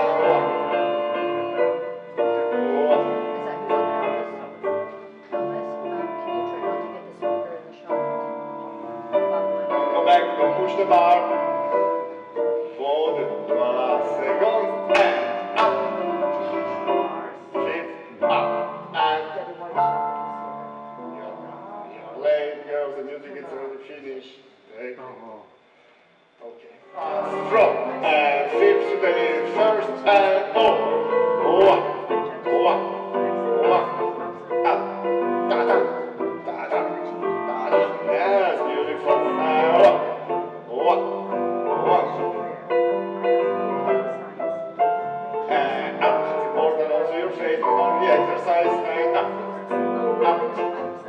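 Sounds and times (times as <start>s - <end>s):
slow piano chords: 0.0s - 25.4s, 26.8s - 51.0s
person speaking: 0.0s - 25.5s, 26.4s - 51.0s.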